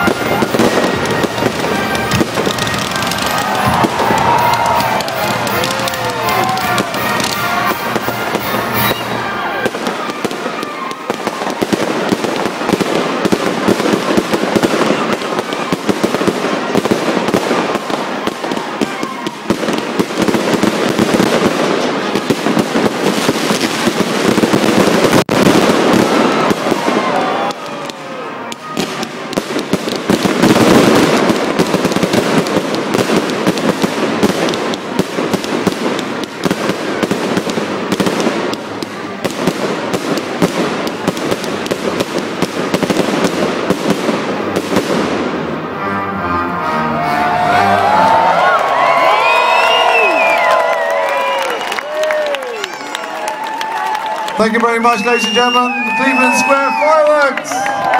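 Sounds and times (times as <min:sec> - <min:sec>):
fireworks crackling and banging: 0:00.0 - 0:45.9, 0:47.4 - 0:57.9.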